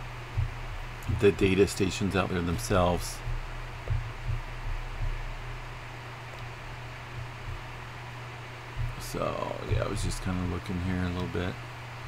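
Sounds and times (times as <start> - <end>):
low rumble: 0.0 - 10.7
faint low bumps: 0.0 - 11.6
steady hiss: 0.0 - 12.0.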